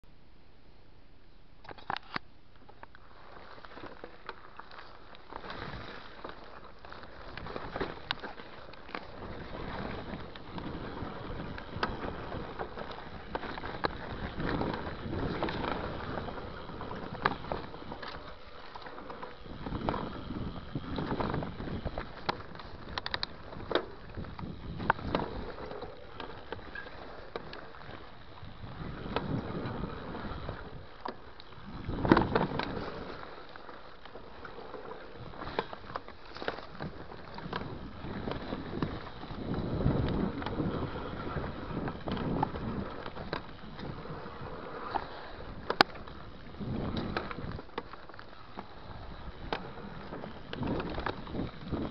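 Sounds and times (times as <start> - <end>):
bike clicks and knocks: 1.6 - 51.9
bike tyres rolling over dirt: 1.7 - 51.9.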